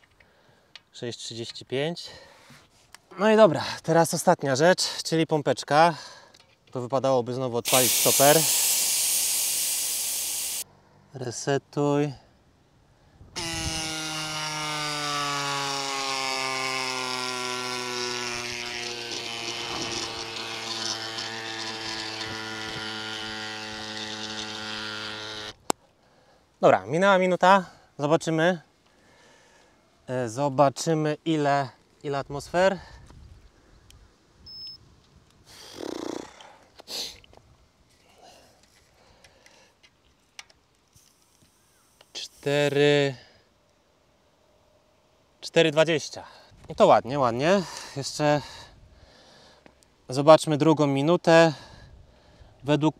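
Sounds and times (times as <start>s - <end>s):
electric bike pump motor whine: 7.7s - 10.6s, 13.4s - 25.6s.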